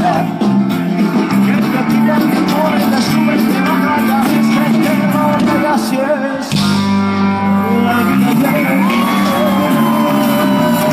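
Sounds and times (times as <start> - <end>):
loud live music: 0.0 - 10.9
crowd whooping and shouting: 8.2 - 10.9.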